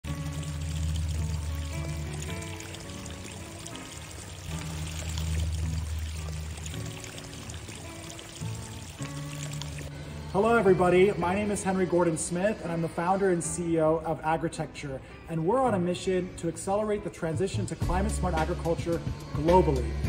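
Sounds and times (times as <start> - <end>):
water pouring from a pipe: 0.0 - 10.0
background music with slow melody: 0.0 - 20.0.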